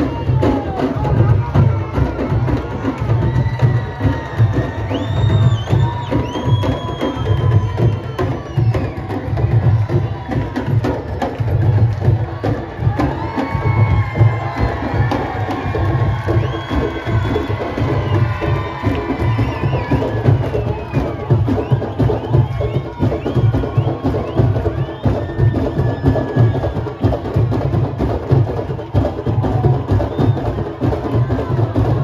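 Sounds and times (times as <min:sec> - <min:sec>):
crowd cheering: 0:00.0 - 0:32.0
hand drums playing rhythm: 0:00.0 - 0:32.0.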